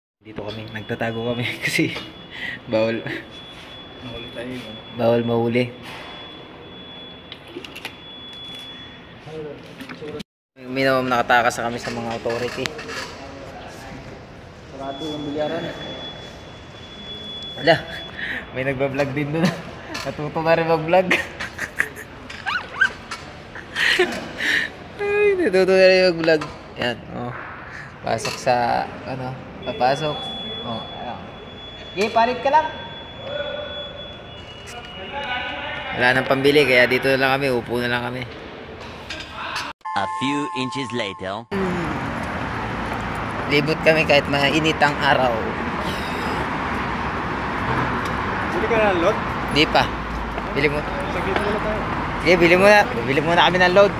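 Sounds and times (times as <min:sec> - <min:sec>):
road traffic rumble and hiss: 0:00.3 - 0:06.7, 0:10.7 - 0:33.0, 0:41.6 - 0:53.9
man giggling: 0:21.1 - 0:22.3, 0:23.5 - 0:24.5.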